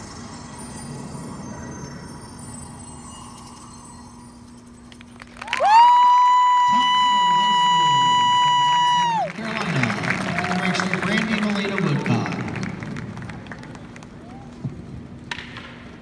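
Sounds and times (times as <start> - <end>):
crowd cheering and applauding: 5.2 - 14.7
high cheering scream: 5.4 - 9.4, 10.2 - 10.9.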